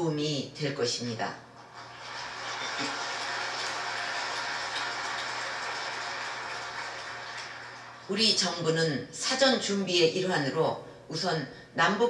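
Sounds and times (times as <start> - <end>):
audience applauding: 1.6 - 8.6.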